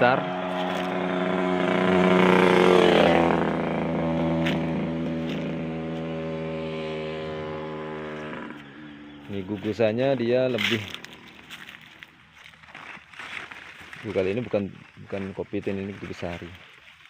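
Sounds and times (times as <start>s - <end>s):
passing vehicle engine: 0.0s - 12.3s.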